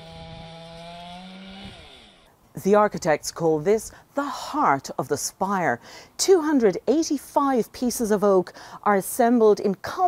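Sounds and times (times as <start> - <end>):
chainsaw running at high revs: 0.0 - 2.3.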